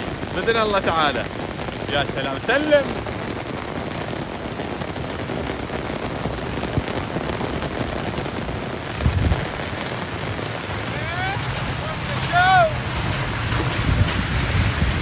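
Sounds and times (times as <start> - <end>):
floodwater rushing in stream: 0.0 - 15.0
steady rain: 0.0 - 15.0.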